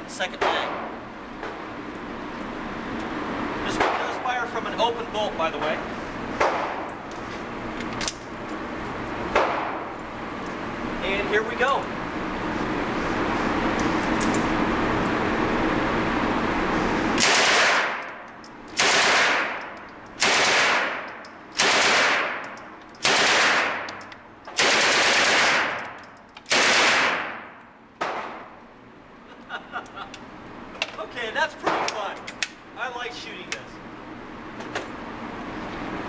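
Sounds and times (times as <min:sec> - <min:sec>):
gunfire echo indoors: 0:17.2 - 0:18.0, 0:18.8 - 0:19.6, 0:20.2 - 0:23.9, 0:24.6 - 0:28.6
submachine gun firing: 0:17.2 - 0:18.0, 0:18.8 - 0:19.6, 0:20.2 - 0:22.4, 0:23.0 - 0:23.9, 0:24.6 - 0:25.8, 0:26.5 - 0:27.4.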